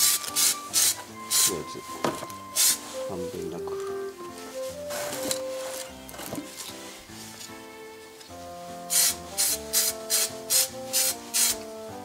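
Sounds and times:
aerosol spray can hissing: 0.0 - 1.7, 2.4 - 3.0, 8.8 - 11.8.

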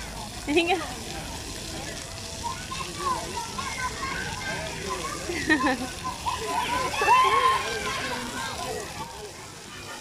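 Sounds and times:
fountain jets spraying and splashing: 0.0 - 10.0
children calling and shouting: 1.4 - 10.0.

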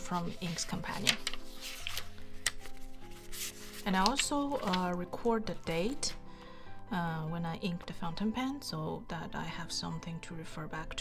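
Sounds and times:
paper pages turning: 0.0 - 6.2
soft background music: 0.0 - 11.0.

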